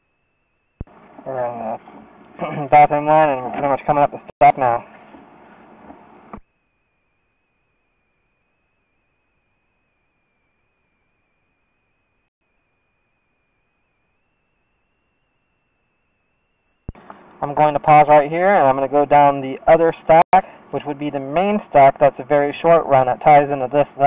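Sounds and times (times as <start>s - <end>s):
thin high whine: 0.0s - 24.0s.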